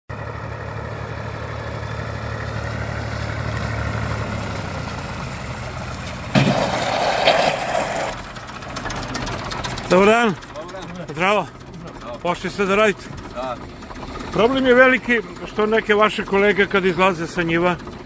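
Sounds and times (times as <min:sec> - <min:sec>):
tractor engine running: 0:00.1 - 0:18.0.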